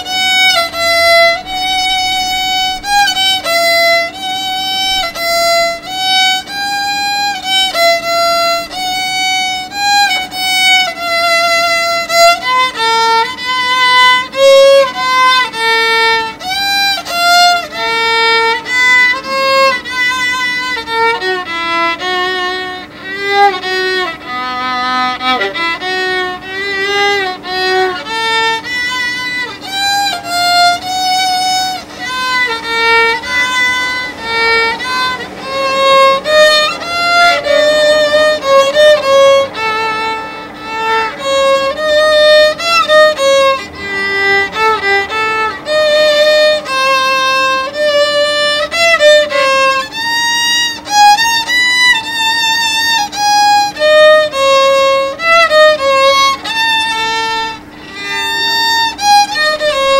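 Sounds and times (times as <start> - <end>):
solo violin melody: 0.0 - 59.9.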